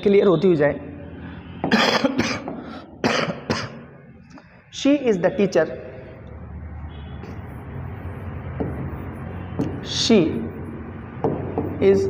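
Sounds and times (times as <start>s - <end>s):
man coughing and clearing throat: 1.7s - 3.9s.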